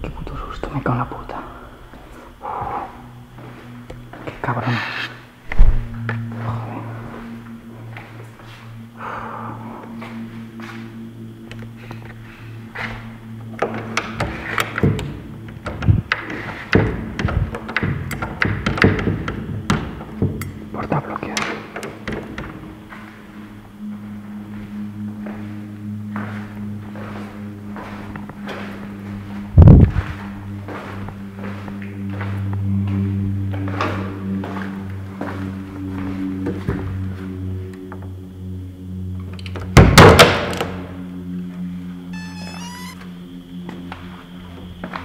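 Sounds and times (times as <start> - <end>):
dark droning background music: 0.0 - 45.0.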